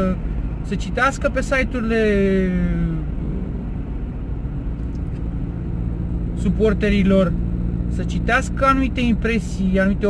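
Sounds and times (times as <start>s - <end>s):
car engine and tyre noise: 0.0s - 10.0s
drawn-out vocal hesitation: 2.6s - 3.8s.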